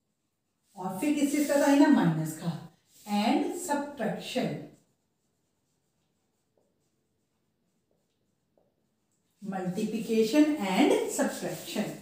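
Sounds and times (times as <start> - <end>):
marker writing on whiteboard: 0.0 - 12.0
woman's voice: 0.8 - 4.7, 9.4 - 12.0.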